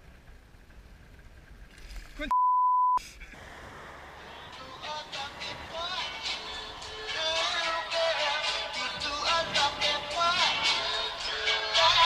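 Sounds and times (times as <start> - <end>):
hip-hop backing track: 4.3 - 12.0.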